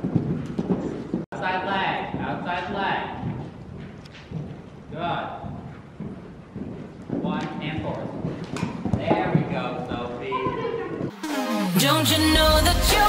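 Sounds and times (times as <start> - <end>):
horse hoofbeats on dirt: 0.0 - 11.1.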